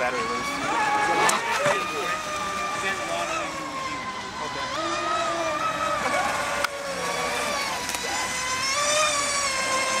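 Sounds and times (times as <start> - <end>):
electric boat motors whining: 0.0 - 10.0.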